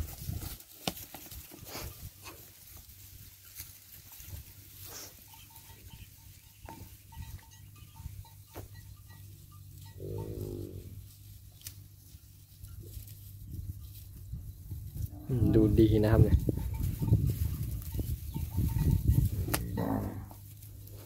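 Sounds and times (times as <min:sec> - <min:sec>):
cow bawling: 0:09.9 - 0:11.0, 0:19.5 - 0:20.4.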